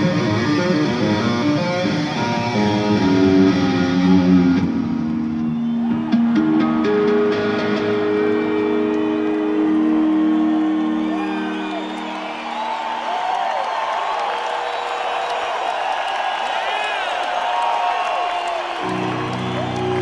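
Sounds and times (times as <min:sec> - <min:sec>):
electric guitar solo: 0:00.0 - 0:13.6, 0:18.8 - 0:20.0
crowd whistling and cheering: 0:00.0 - 0:20.0.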